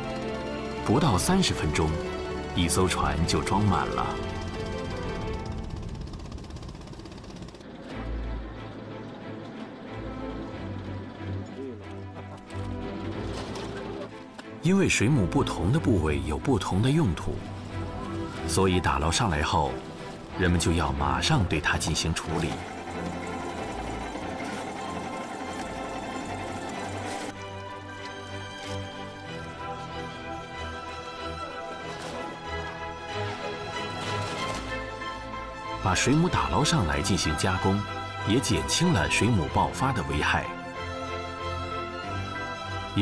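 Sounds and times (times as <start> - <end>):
background music: 0.0 - 43.0
boat engine chugging: 0.0 - 43.0
machine-like clatter: 2.9 - 14.1, 21.4 - 27.4.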